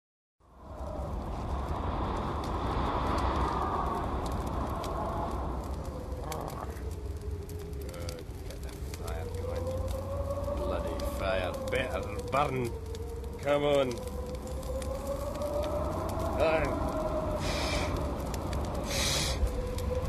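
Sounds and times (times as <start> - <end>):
scattered crackles: 0.4 - 20.0
tape hiss and low rumble: 0.4 - 20.0.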